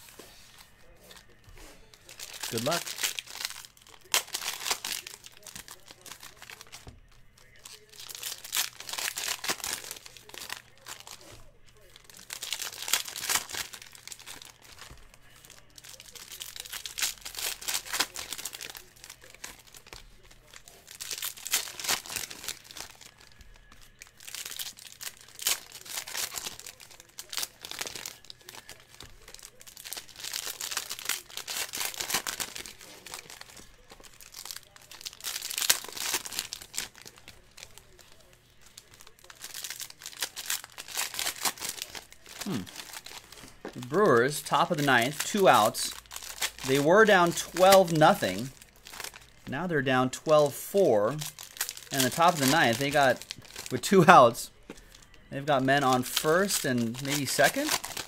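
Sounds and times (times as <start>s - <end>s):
foil wrappers crinkling and tearing: 0.0s - 58.0s.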